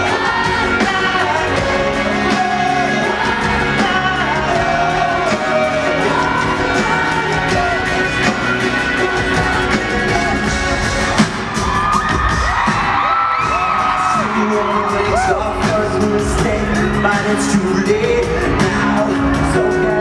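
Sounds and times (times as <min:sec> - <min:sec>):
lead voice singing: 0:00.0 - 0:11.6, 0:12.9 - 0:20.0
live pop-rock band: 0:00.0 - 0:20.0.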